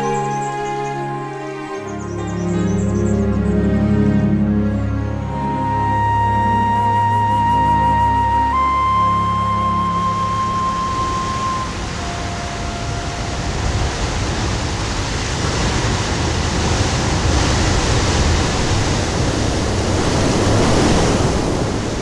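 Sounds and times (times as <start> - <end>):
held flute note: 5.1 - 14.2
surf crashing on rocks: 10.7 - 22.0.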